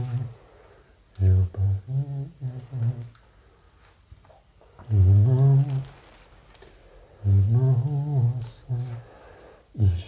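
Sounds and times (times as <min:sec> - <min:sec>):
person humming: 0:00.0 - 0:00.4, 0:01.2 - 0:03.2, 0:04.8 - 0:06.0, 0:07.2 - 0:09.0.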